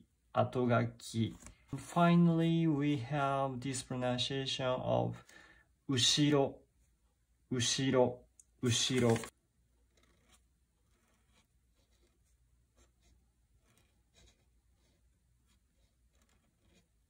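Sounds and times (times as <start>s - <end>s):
felt-tip pen scratching on paper: 9.8s - 17.0s.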